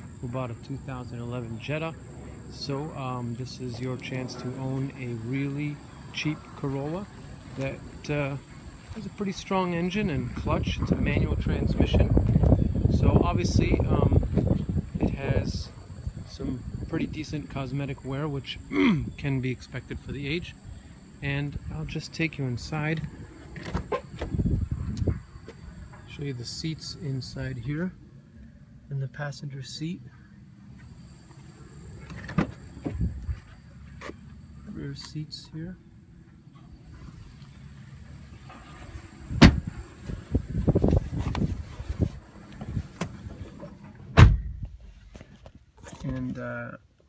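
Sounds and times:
car door shutting: 23.4 - 24.4, 32.0 - 33.1, 38.5 - 40.2, 42.6 - 44.7
car door thumps: 39.4 - 39.7, 44.1 - 44.7.

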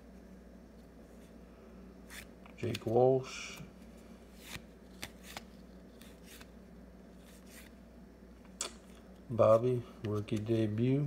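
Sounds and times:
paper cards sliding: 2.0 - 3.0, 4.3 - 6.5, 7.1 - 7.8
card swishes: 2.0 - 7.8.

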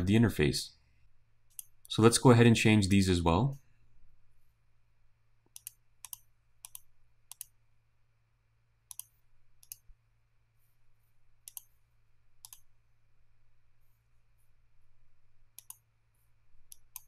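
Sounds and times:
faint low hum: 0.0 - 17.0
computer mouse clicks: 1.5 - 1.9, 5.4 - 7.6, 8.9 - 10.0, 11.4 - 11.8, 12.4 - 12.7, 15.5 - 15.9, 16.7 - 17.0.

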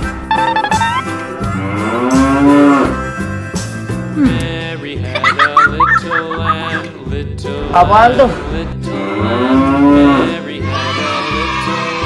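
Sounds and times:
children's song music: 0.0 - 12.0
cow mooing: 1.6 - 3.1, 8.9 - 10.4.

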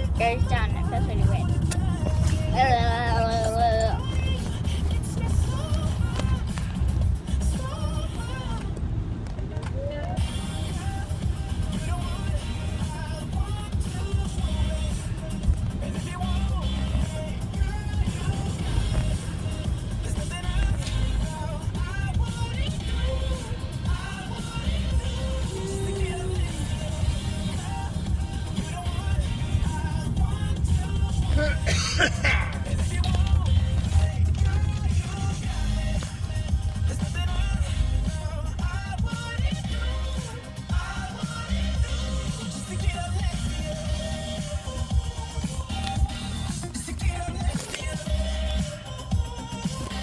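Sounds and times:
car rumble from inside cabin: 0.0 - 50.0.

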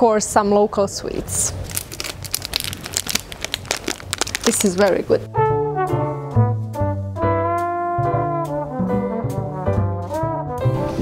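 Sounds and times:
cellophane crinkling: 1.6 - 5.2.

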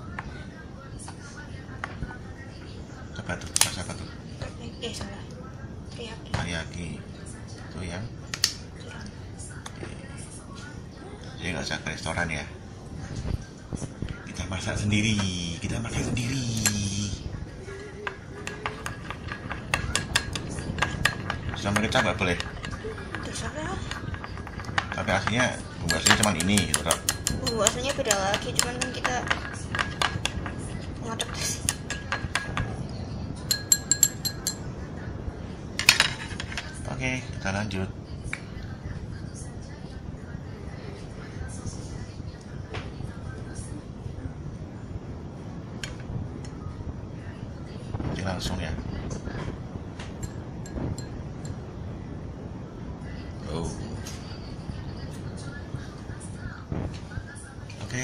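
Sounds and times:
chopsticks clinking glass bowl: 23.9 - 30.5, 33.5 - 34.7, 50.2 - 51.6.

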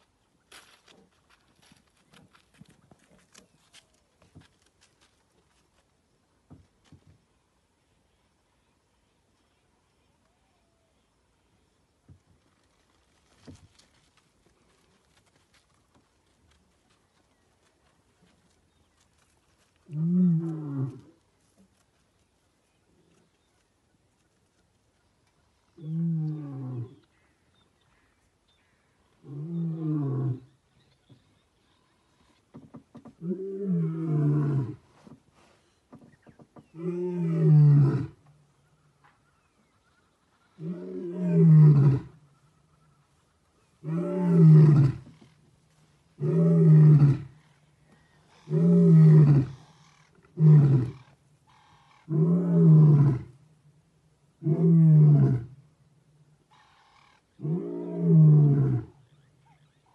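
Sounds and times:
lion roaring: 48.4 - 49.6, 50.3 - 51.0, 57.4 - 59.0.

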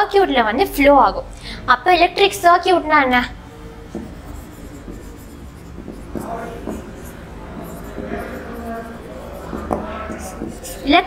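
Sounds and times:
pen tapping whiteboard: 3.8 - 10.9
marker strokes on whiteboard: 3.8 - 11.0.

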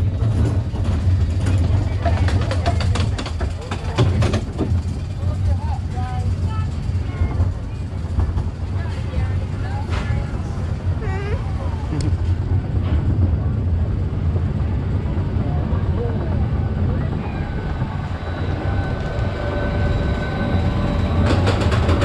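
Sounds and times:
roller coaster clicks: 0.0 - 22.0
roller coaster rumbling on track: 0.0 - 22.0.

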